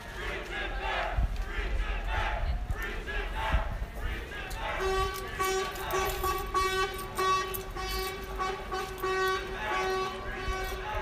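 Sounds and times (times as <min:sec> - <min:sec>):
crowd noise: 0:00.0 - 0:11.0
horn tooting: 0:04.6 - 0:11.0.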